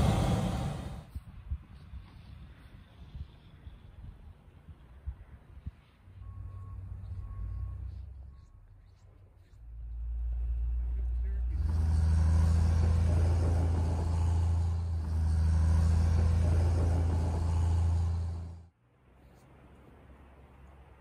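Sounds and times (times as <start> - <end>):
heavy vehicle engine humming: 0.0 - 1.1, 5.2 - 21.0.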